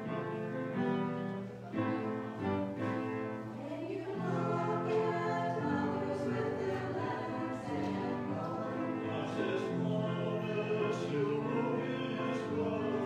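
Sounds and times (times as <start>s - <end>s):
slow sacred choral music: 0.0s - 13.0s.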